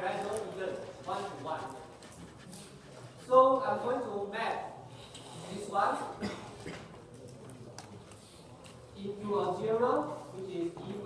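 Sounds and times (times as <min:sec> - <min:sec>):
indistinct voices talking quietly: 0:00.0 - 0:04.1.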